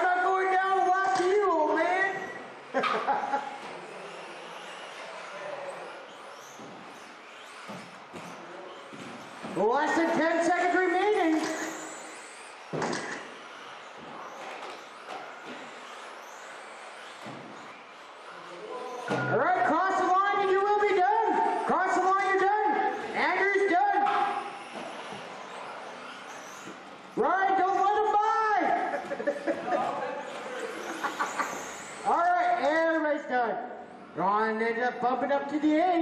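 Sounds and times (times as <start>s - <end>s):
rc car motor whine: 0.0s - 35.5s.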